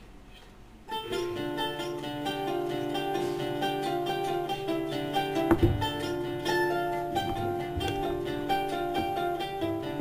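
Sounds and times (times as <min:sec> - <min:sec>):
mandolin plucked notes: 0:00.3 - 0:10.0
classical guitar plucked notes: 0:00.9 - 0:10.0.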